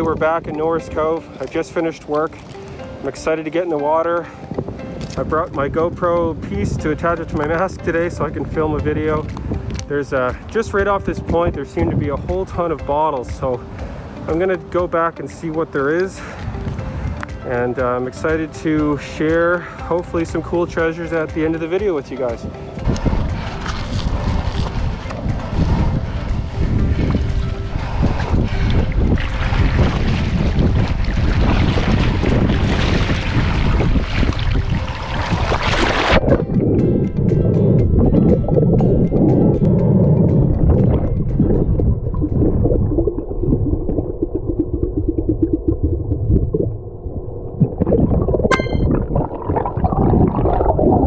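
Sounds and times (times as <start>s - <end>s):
underwater rumble and bubbling: 4.4s - 14.4s, 22.3s - 51.0s
water splashing: 6.5s - 36.6s.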